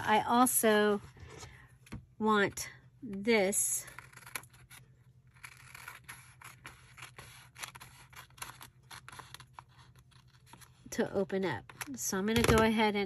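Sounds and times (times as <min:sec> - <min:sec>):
scissors snipping paper: 0:03.8 - 0:10.4.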